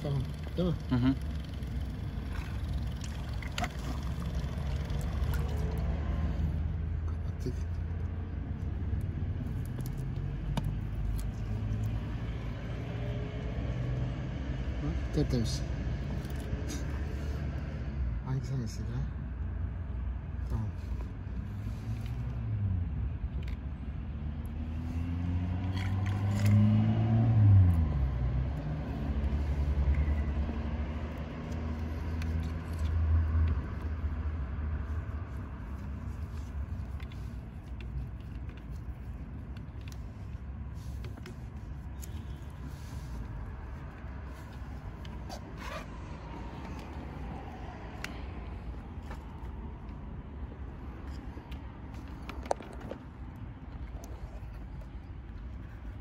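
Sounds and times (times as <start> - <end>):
hoses being handled: 34.8 - 56.0.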